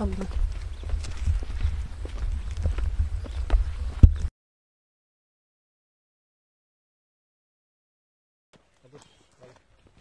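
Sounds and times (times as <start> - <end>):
footsteps on rock: 0.0 - 4.3.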